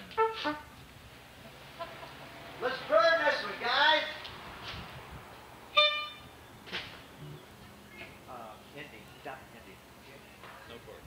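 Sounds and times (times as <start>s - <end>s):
short horn toot: 0.0s - 0.8s, 5.7s - 6.3s
low background noise: 0.0s - 11.0s.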